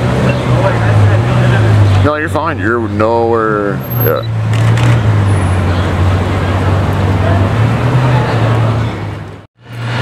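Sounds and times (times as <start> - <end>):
car engine deep rumble: 0.0 - 10.0
street traffic noise: 0.0 - 10.0.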